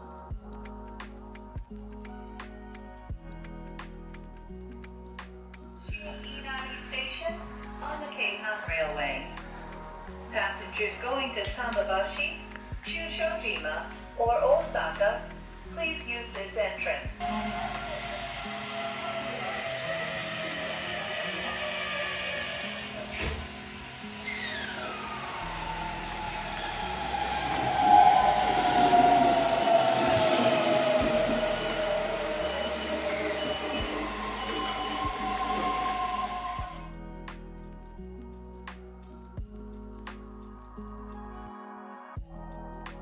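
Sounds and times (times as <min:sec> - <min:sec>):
background music: 0:00.0 - 0:43.0
electric train motor whine: 0:17.2 - 0:36.9.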